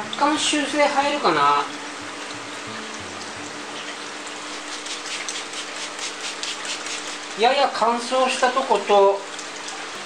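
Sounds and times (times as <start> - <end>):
water trickling over rocks: 0.0 - 10.0.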